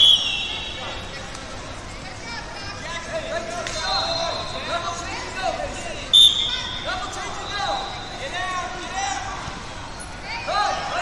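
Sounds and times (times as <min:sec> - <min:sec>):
referee's whistle: 0:00.0 - 0:01.0, 0:03.8 - 0:04.6, 0:06.1 - 0:08.4.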